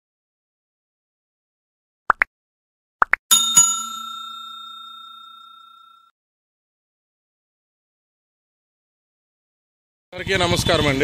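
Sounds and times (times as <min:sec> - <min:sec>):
bell ding chime: 0:03.3 - 0:06.1.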